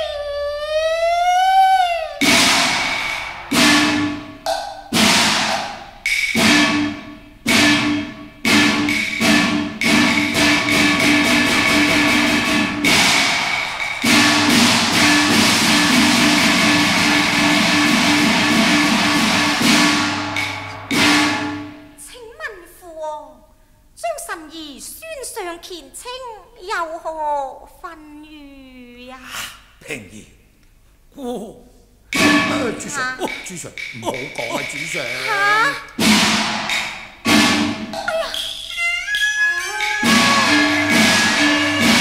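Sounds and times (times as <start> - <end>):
person singing: 0.0 - 2.5, 32.4 - 36.0, 38.1 - 42.0
gongs and cymbals: 2.2 - 22.0, 32.1 - 42.0.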